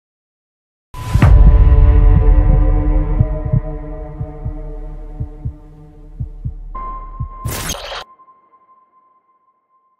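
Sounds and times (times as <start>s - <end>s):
low double thumps: 1.2s - 7.5s.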